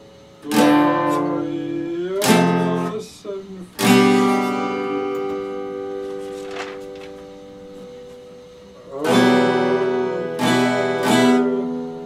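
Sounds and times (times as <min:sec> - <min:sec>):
acoustic guitar chord ringing: 0:00.0 - 0:12.0
guitar strum: 0:00.0 - 0:12.0
guitar string noise: 0:00.4 - 0:12.0.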